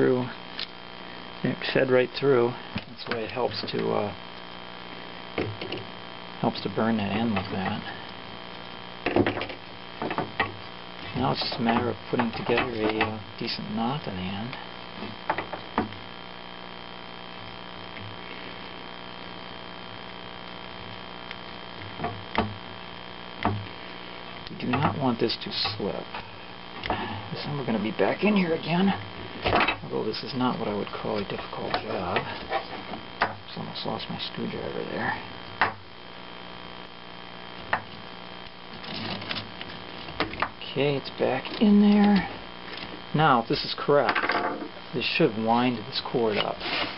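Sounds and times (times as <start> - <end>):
mains hum: 0.0 - 46.9.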